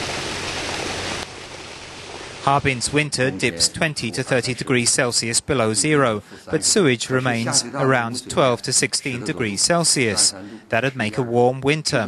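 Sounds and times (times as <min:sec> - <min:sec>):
water gushing from pipe: 0:00.0 - 0:03.7.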